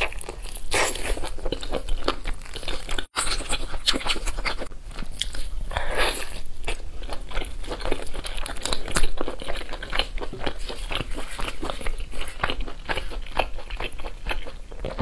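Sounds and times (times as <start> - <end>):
chewing: 0.0 - 15.0.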